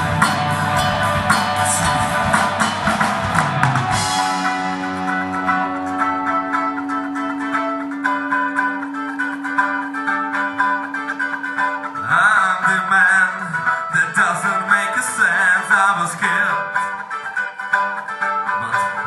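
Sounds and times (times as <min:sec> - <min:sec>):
live band music: 0:00.0 - 0:19.0.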